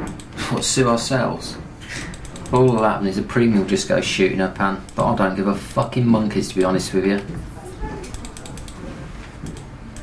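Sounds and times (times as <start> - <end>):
ratchet-like mechanical clicks: 2.0 - 3.0, 8.1 - 8.8.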